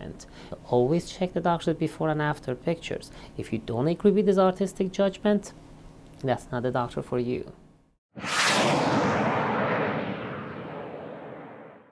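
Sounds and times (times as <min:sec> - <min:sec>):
rushing rumbling logo effect: 0:08.2 - 0:11.8.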